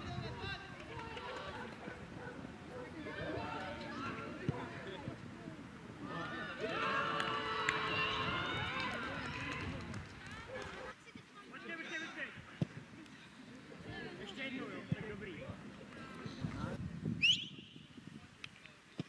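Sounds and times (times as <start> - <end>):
people shouting and cheering: 0.0 - 5.1, 6.0 - 10.9.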